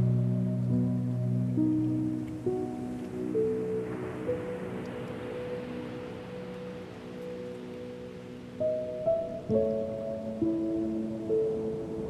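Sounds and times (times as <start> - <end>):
piano chord ringing: 0.0 - 12.0
ocean waves hissing: 1.6 - 12.0.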